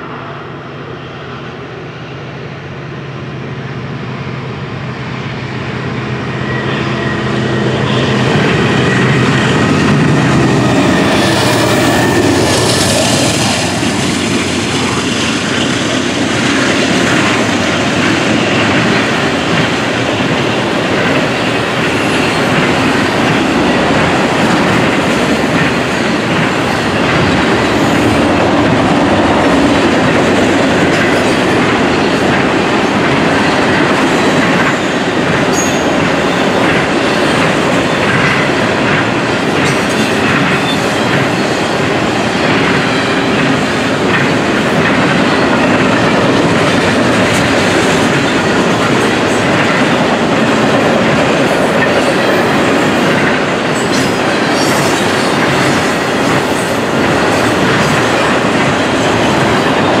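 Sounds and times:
steel wheels rumbling on rail: 0.0s - 60.0s.

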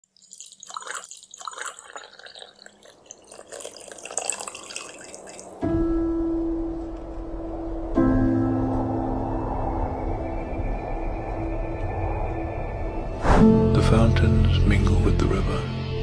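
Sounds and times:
liquid pouring into a mug: 0.0s - 5.6s
ambient music with deep held notes: 5.1s - 16.0s.

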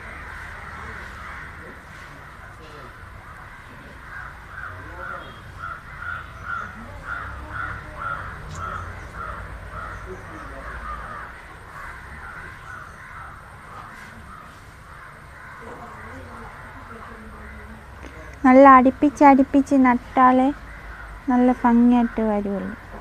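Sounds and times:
crow cawing: 0.0s - 23.0s.

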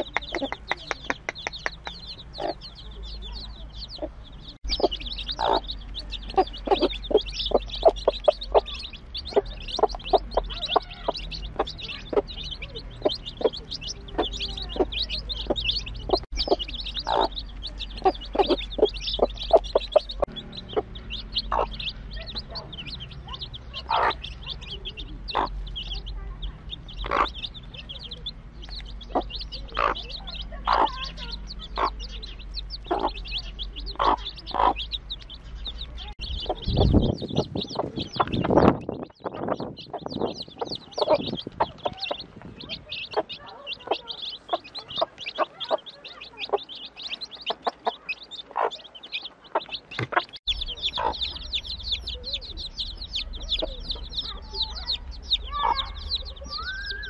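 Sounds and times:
chicks peeping: 0.0s - 57.0s
hen clucking: 0.0s - 57.0s.

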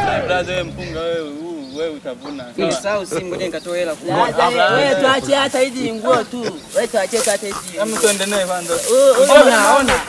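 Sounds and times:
men's voices: 0.0s - 10.0s
high hissing noise: 3.7s - 10.0s.

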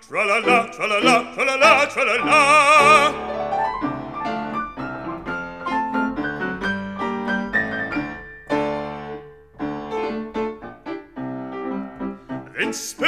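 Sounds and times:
solo piano playing: 0.3s - 13.0s.

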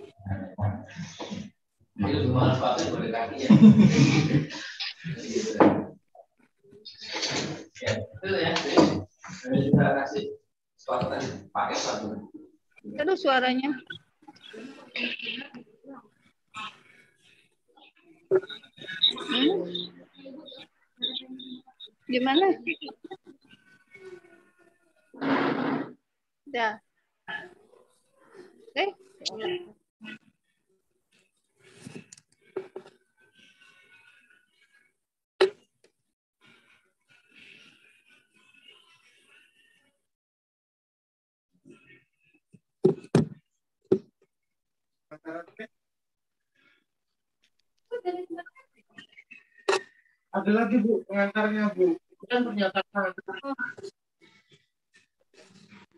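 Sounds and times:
faint murmuring: 0.0s - 26.0s, 27.3s - 30.4s
indistinct speech: 7.0s - 10.3s, 10.9s - 12.3s, 18.3s - 23.2s.

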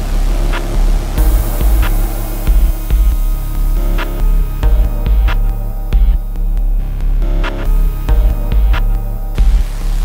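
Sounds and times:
high hiss: 0.0s - 4.7s
pulsing deep bass: 0.0s - 10.0s.

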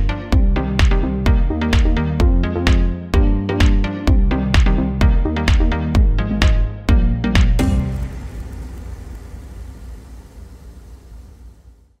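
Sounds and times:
low rumbling wash: 7.6s - 12.0s.

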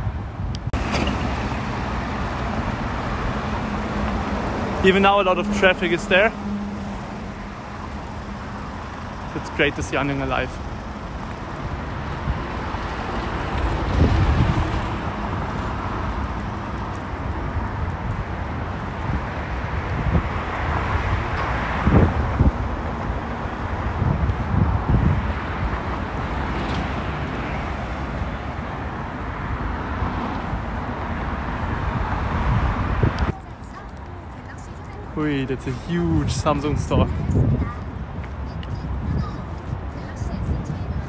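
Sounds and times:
wind buffeting microphone: 0.0s - 5.2s, 5.8s - 41.0s
cars passing: 0.0s - 41.0s.

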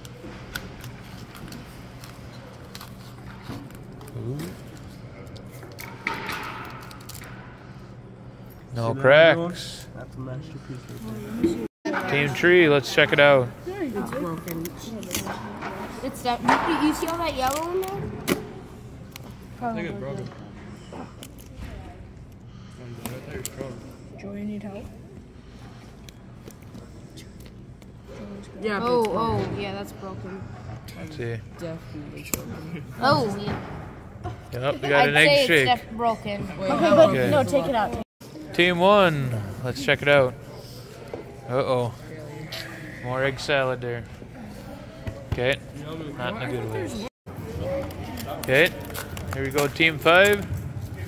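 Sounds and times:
faint clicks and rustles of packing: 0.0s - 5.9s, 47.6s - 51.0s.

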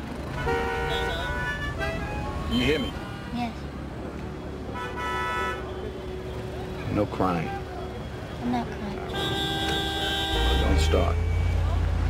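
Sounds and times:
low rumble of city traffic: 0.0s - 12.0s
car horn honk: 0.4s - 3.3s, 4.7s - 6.0s, 9.0s - 11.7s.

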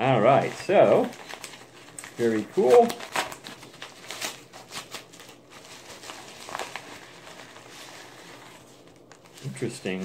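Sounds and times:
paper envelope crinkling: 0.1s - 10.0s.

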